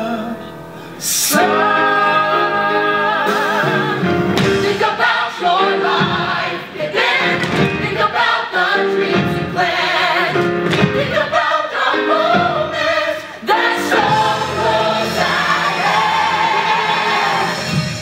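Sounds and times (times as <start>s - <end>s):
chorus singing: 0.0s - 18.0s
instrumental accompaniment: 0.0s - 18.0s.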